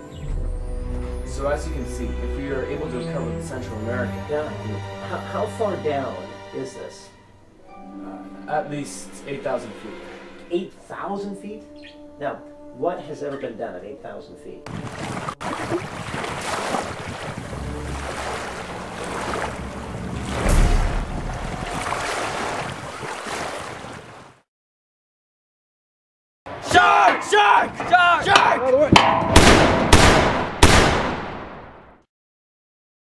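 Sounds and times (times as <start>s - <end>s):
rushing sea water: 14.7s - 24.4s
low rumble: 17.4s - 22.0s
handgun shots with echo: 29.2s - 31.2s.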